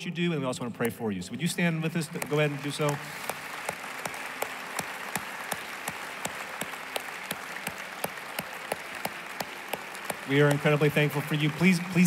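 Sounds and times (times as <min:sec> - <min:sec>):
congregation applauding: 0:01.8 - 0:12.0
close loud hand claps: 0:02.0 - 0:12.0.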